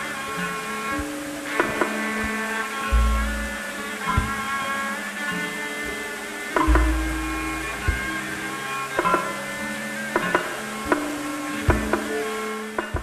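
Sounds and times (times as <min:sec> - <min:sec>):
deep gong ringing: 0:00.0 - 0:06.0, 0:06.6 - 0:13.0
gamelan metallophones ringing: 0:00.0 - 0:13.0.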